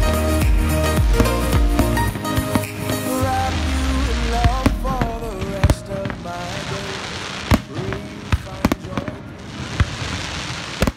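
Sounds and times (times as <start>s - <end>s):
crackling hiss of fireworks: 0.0s - 10.9s.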